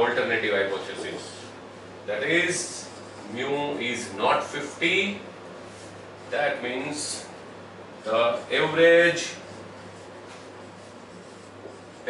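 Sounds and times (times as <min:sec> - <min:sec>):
low room hum: 0:00.0 - 0:12.0
marker pen scratching on whiteboard: 0:08.3 - 0:12.0.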